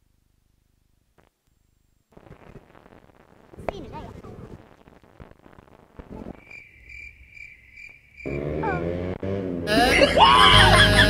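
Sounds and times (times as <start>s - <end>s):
cricket chirp sound effect: 6.3s - 8.7s
music: 9.7s - 11.0s.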